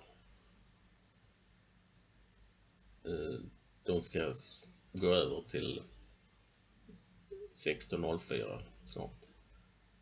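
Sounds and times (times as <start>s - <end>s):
man speaking: 3.1s - 6.0s, 7.4s - 9.3s.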